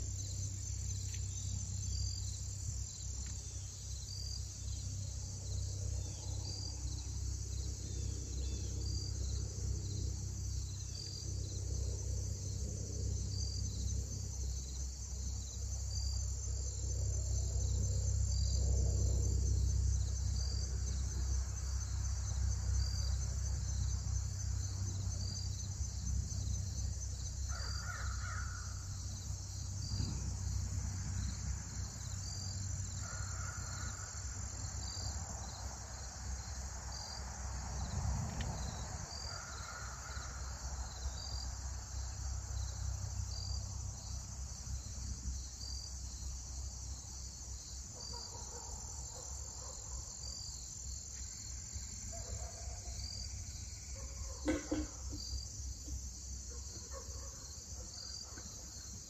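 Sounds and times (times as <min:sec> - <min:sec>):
low steady rumble: 0:00.0 - 0:27.5, 0:28.5 - 0:33.0
insect chorus: 0:00.0 - 0:59.0
bird cawing: 0:27.5 - 0:28.7.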